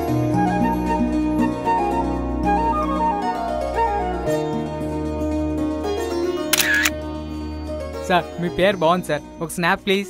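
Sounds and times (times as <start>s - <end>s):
background music: 0.0s - 10.0s
camera shutter click: 6.5s - 7.0s.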